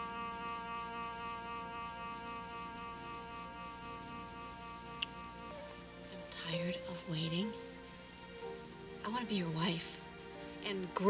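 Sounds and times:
held soft chord: 0.0s - 11.0s.

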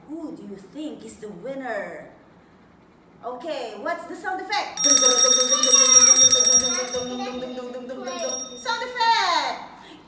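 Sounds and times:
small metal hand bell ringing: 4.8s - 9.0s.

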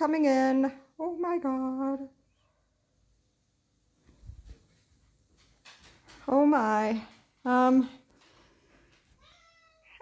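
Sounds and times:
cat meowing faintly: 9.2s - 10.0s.

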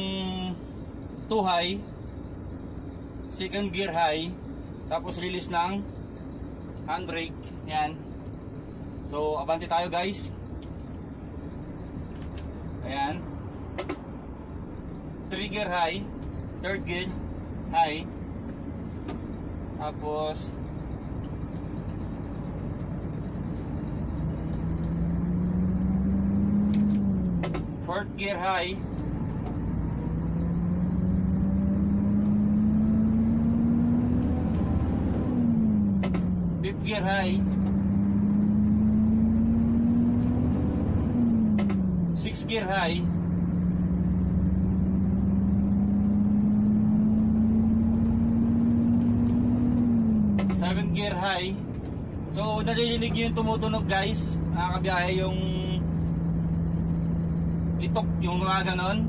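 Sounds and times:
truck diesel engine accelerating: 0.0s - 59.0s.

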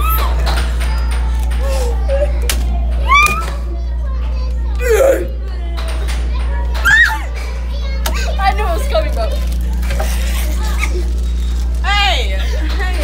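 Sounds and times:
girls chattering: 0.0s - 13.0s
girls' high-pitched cries: 6.8s - 7.4s.

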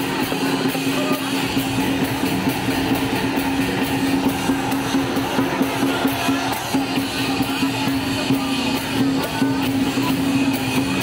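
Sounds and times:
music with quick beat: 0.0s - 11.0s.

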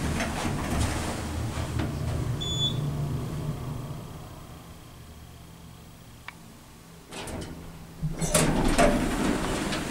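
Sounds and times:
elevator low rumble: 0.0s - 9.9s
short high beep: 2.4s - 2.8s.

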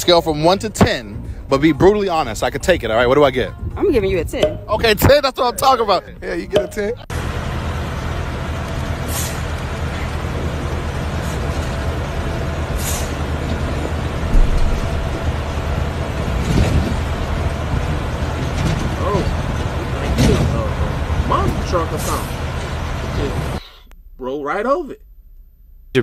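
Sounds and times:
truck engine rumbling: 0.0s - 26.0s
air brake hisses: 9.0s - 9.5s, 12.8s - 13.2s
thump: 14.3s - 15.0s.

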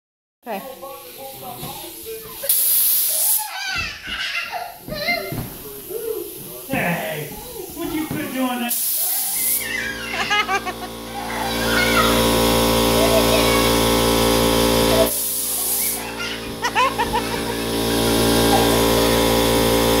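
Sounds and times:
voices: 0.5s - 14.2s, 14.8s - 19.2s
air blow gun hiss: 1.0s - 3.5s, 5.2s - 20.0s
steady machine hum: 9.6s - 20.0s.

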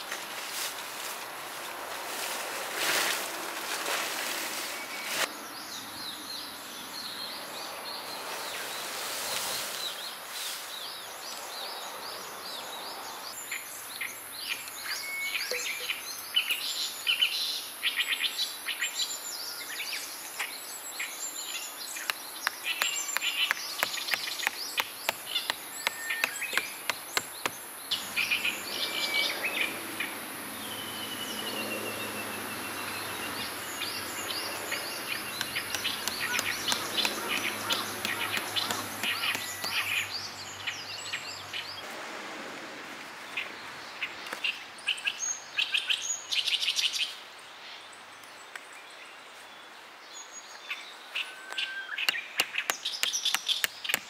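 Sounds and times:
birds chirping and singing: 4.5s - 41.8s, 50.1s - 54.0s.

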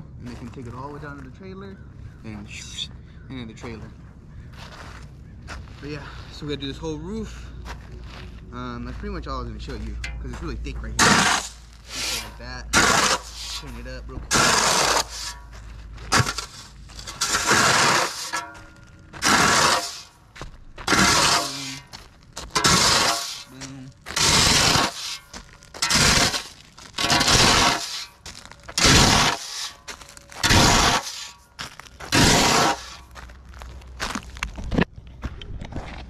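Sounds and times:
shovel scraping gravel: 9.6s - 34.6s.

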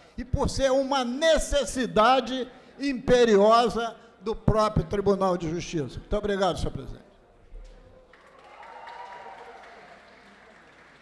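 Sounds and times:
applause: 8.0s - 11.0s.

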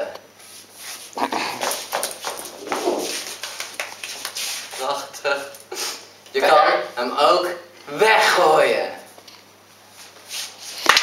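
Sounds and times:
footsteps on hard floor: 1.2s - 5.1s.

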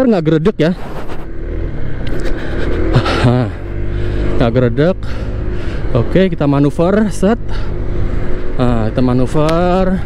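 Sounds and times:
wind and road noise: 0.0s - 10.0s
scooter engine drone: 0.1s - 10.0s.

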